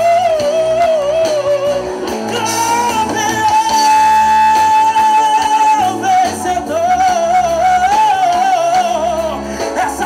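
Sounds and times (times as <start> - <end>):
man singing with vibrato: 0.0 - 10.0
rock band playing: 0.0 - 10.0.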